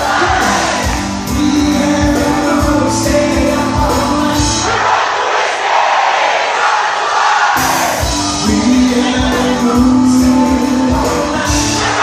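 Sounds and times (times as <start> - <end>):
drums and bass: 0.0 - 4.8, 7.6 - 12.0
rock band playing: 0.0 - 5.0, 7.6 - 12.0
crowd shouting and cheering: 0.0 - 12.0.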